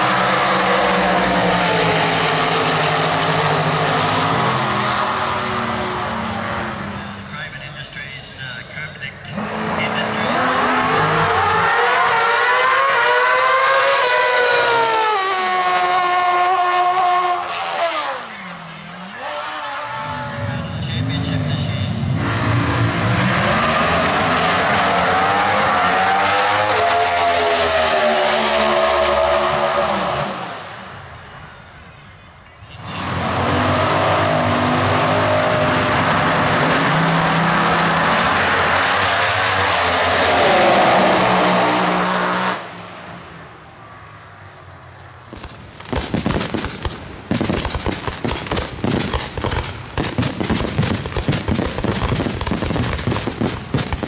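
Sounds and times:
drag motorcycles at full throttle: 0.0 - 30.9, 32.8 - 43.2, 45.3 - 54.0
drag cars at full throttle: 0.0 - 54.0.

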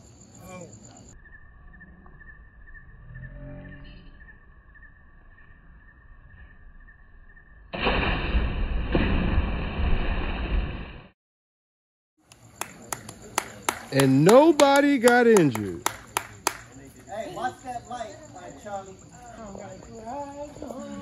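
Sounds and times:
loud splash into pool water: 7.7 - 11.1.

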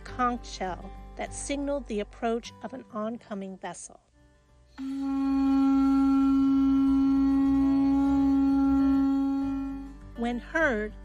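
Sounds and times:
conch shell trumpet low note: 4.8 - 10.4.

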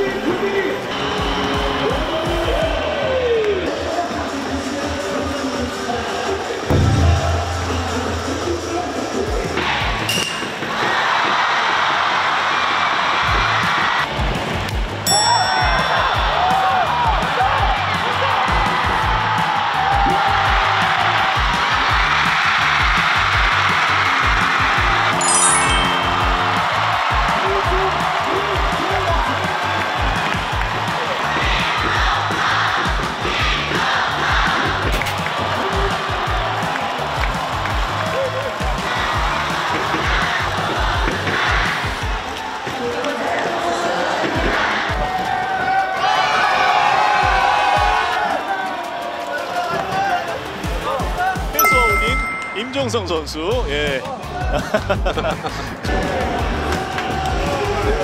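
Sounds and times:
crowd cheering: 1.1 - 4.9, 6.4 - 53.1, 55.8 - 58.0
music with steady beat: 6.7 - 9.0, 25.8 - 29.4.

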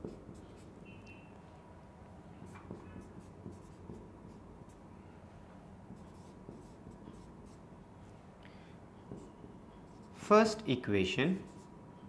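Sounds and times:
marker pen writing on whiteboard: 0.0 - 1.4, 2.2 - 5.0, 5.8 - 8.2, 9.0 - 10.3, 11.4 - 11.8.

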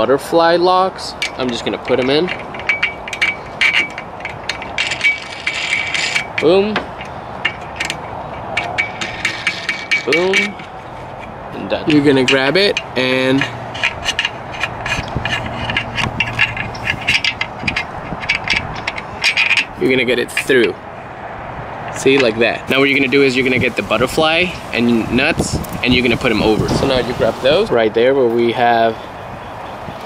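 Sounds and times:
short metal scrapes: 1.2 - 20.7.

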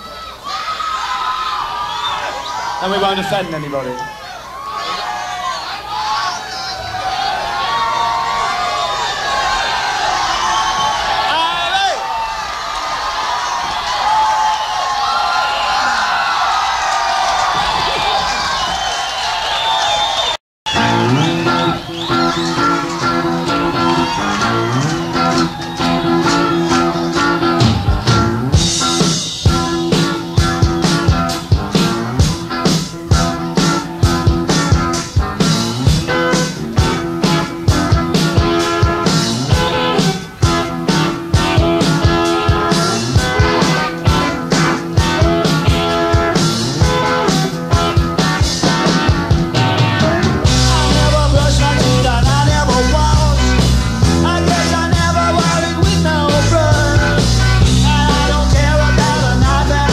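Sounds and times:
audience cheering and shouting: 0.0 - 59.9
drums steady beat: 20.7 - 59.9
rock band playing chords: 20.7 - 59.9.

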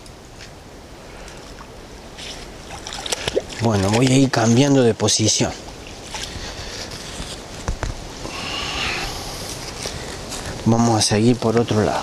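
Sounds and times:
magnet hauled through stream water: 1.3 - 10.6
water splashing: 1.5 - 7.2
rush of noise: 6.4 - 10.8.

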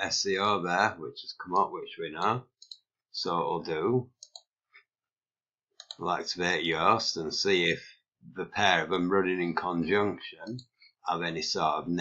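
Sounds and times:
computer mouse clicks: 2.6 - 2.9, 4.2 - 4.5, 5.8 - 6.0.

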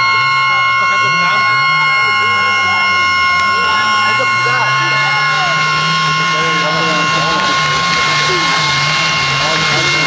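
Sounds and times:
crowd chatter: 0.0 - 10.0
distant rally car engine droning: 0.0 - 10.0.

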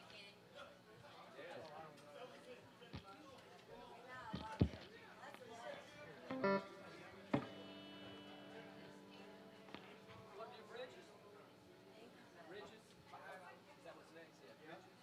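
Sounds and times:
bar chatter: 0.6 - 15.0
electric guitar chord ringing: 6.2 - 12.9
guitar handling knocks: 6.3 - 8.5.

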